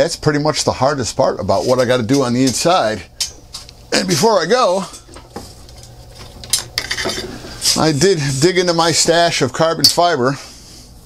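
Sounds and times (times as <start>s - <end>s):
man talking: 0.0s - 3.1s, 3.9s - 5.0s, 7.6s - 10.5s.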